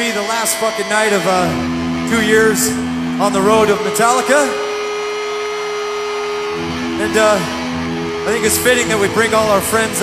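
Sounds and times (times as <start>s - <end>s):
crowd noise: 0.0s - 10.0s
electric guitar drone: 0.0s - 10.0s.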